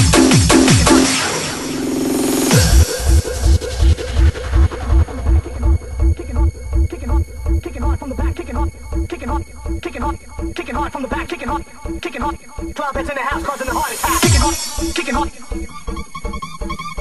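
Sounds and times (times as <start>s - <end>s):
fast kick drum: 0.0s - 1.1s, 2.5s - 9.8s
bouncy bass stab: 0.0s - 10.6s.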